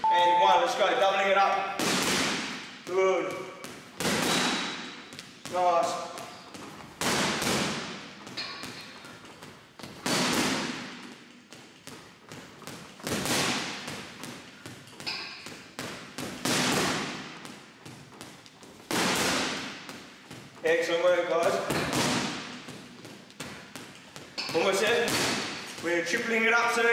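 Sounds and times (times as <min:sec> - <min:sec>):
hard punch echoing: 0:01.4 - 0:09.0, 0:09.8 - 0:11.2, 0:12.3 - 0:26.9.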